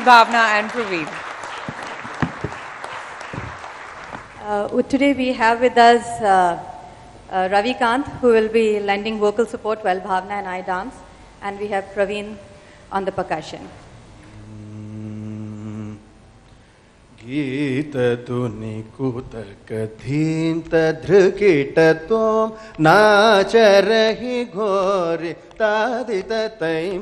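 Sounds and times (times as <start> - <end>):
audience applauding: 0.0 - 4.5
man humming a low note: 14.2 - 16.3.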